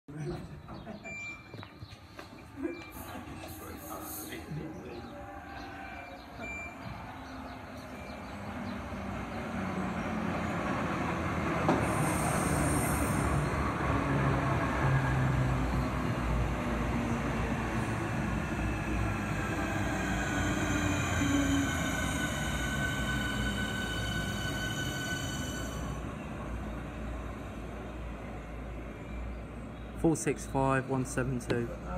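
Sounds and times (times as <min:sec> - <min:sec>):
train wheels rumbling on rails: 0:06.4 - 0:29.2
train brakes whining: 0:11.5 - 0:13.9, 0:17.7 - 0:26.4.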